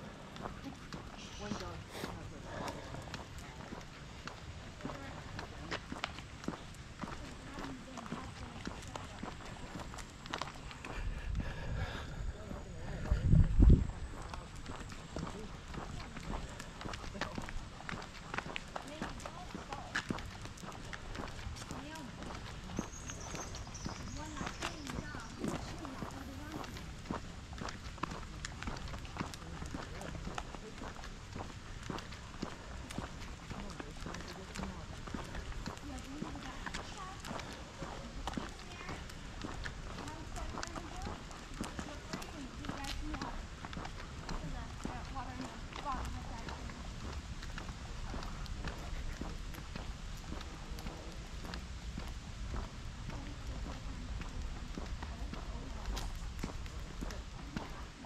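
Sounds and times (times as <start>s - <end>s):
faint talking: 0.0s - 27.2s
footsteps on road and gravel: 0.0s - 58.0s.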